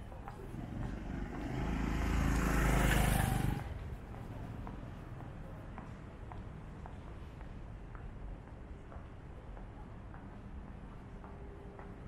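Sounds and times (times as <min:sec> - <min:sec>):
motorcycle passing by: 0:00.4 - 0:04.7.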